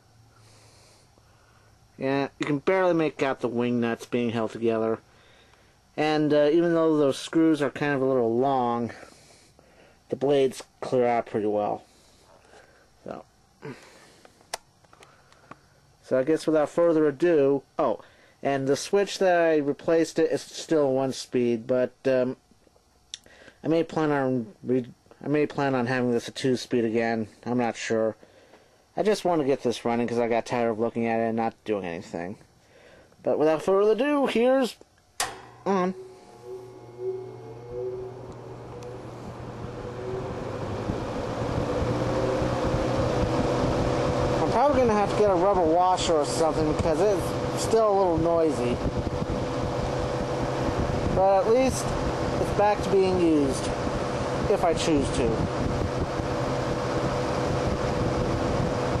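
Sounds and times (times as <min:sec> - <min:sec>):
fan air rush: 0:00.0 - 0:22.4, 0:23.0 - 0:59.0
fan motor hum and whine: 0:00.0 - 0:59.0
fan switch: 0:35.1 - 0:59.0.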